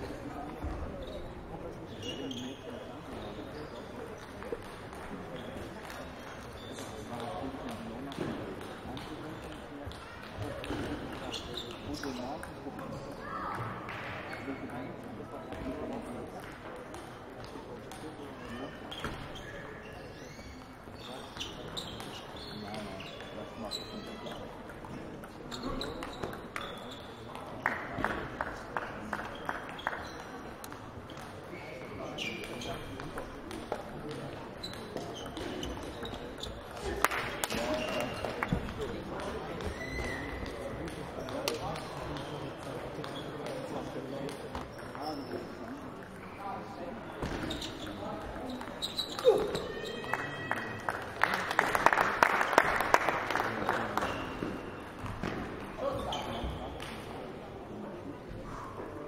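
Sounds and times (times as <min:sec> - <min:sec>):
murmur of voices in a hall: 0:00.0 - 0:59.0.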